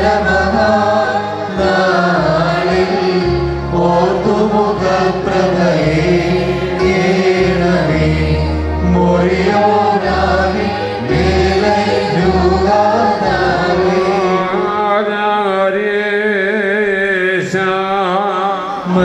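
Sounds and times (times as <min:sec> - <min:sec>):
sustained low accompanying notes: 0:00.0 - 0:15.6
liturgical chant: 0:00.0 - 0:19.0.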